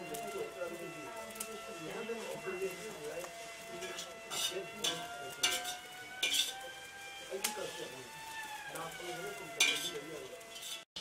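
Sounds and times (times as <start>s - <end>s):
metal spatula scraping a wok: 0.0s - 11.0s.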